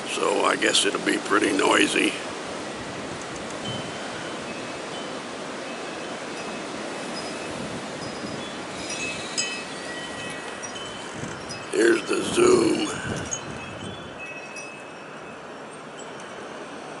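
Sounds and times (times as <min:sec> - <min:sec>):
wind noise on microphone: 0:02.2 - 0:17.0
faint high chime tones: 0:03.7 - 0:16.9.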